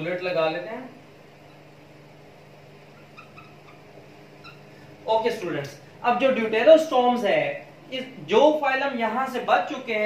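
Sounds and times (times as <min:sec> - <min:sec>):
steady low hum: 0:00.0 - 0:10.0
marker squeaking on whiteboard: 0:01.4 - 0:01.7, 0:02.8 - 0:04.8.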